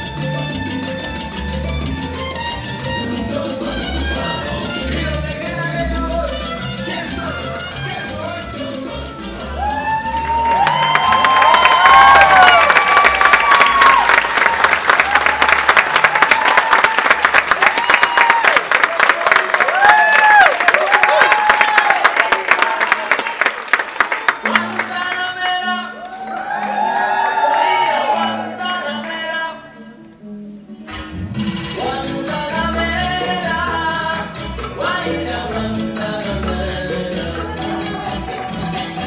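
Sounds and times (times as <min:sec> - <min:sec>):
music: 0:00.0 - 0:16.2, 0:23.8 - 0:39.0
audience cheering and whooping: 0:09.4 - 0:23.7, 0:25.9 - 0:28.7
audience applauding: 0:09.6 - 0:28.2.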